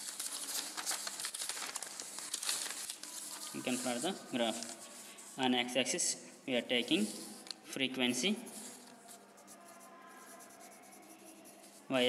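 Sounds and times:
pen scratching on paper: 0:08.5 - 0:11.8.

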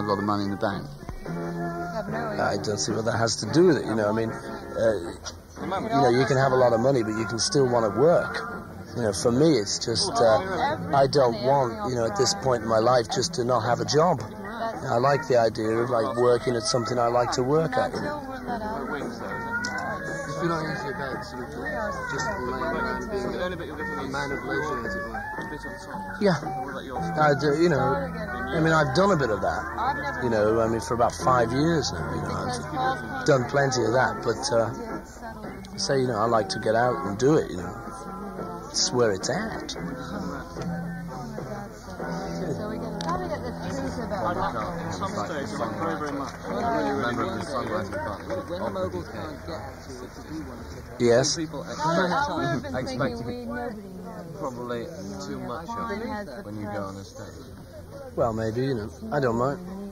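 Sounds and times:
voices talking: 0:00.0 - 0:59.9
held wavering vocal: 0:25.1 - 0:47.1.

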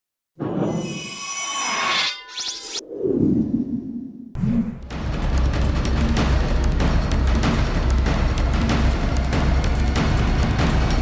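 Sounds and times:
high ringing tones: 0:00.6 - 0:02.8.

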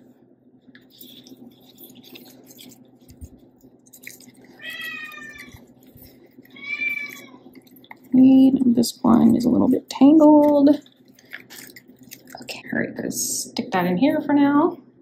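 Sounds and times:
low steady hum: 0:00.0 - 0:15.0
plant leaves rustling: 0:00.8 - 0:12.5
cat meowing: 0:04.6 - 0:05.6, 0:06.5 - 0:07.4.

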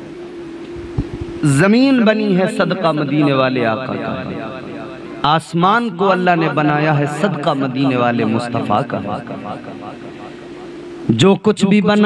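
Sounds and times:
steady drone: 0:00.0 - 0:11.3
man speaking over public address: 0:01.4 - 0:10.3, 0:11.1 - 0:12.0.

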